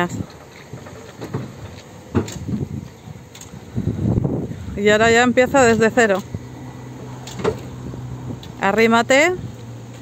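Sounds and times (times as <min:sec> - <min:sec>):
forklift forks clunking and knocking: 0:00.4 - 0:02.7.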